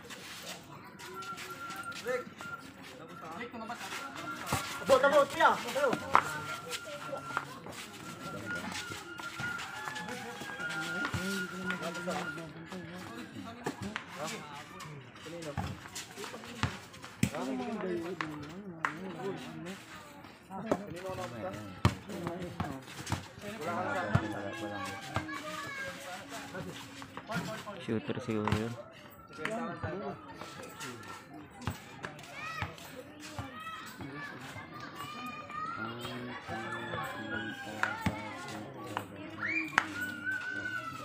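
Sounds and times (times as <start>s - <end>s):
faint music: 0.0s - 41.0s
players and onlookers calling out: 20.7s - 27.3s, 29.1s - 41.0s.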